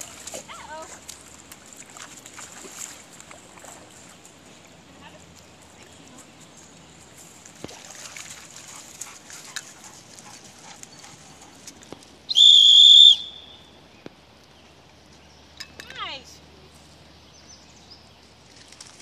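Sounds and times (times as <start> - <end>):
high-pitched whistle blast: 12.3 - 13.7.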